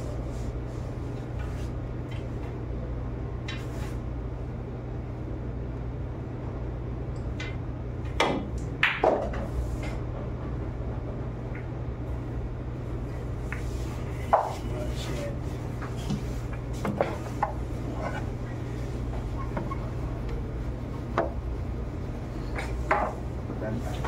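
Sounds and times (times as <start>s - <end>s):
low room hum: 0.0s - 24.0s
pool balls clicking: 7.2s - 12.0s, 22.5s - 23.2s
cue striking ball: 8.1s - 9.5s.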